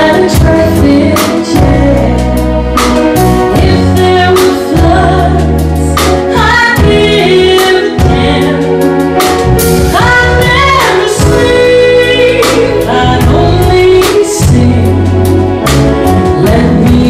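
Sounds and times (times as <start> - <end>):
jazz combo playing: 0.0 - 17.0
woman singing: 0.0 - 17.0.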